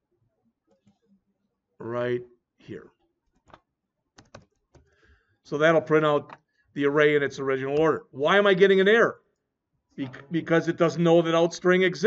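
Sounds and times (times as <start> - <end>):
faint keyboard keystrokes: 3.3 - 5.0.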